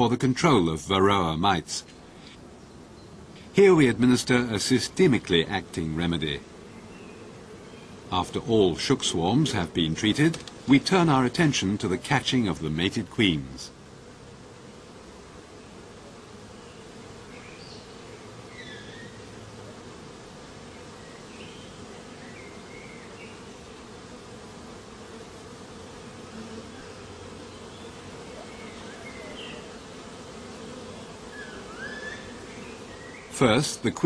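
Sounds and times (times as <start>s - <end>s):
honey bees buzzing: 0.0s - 34.0s.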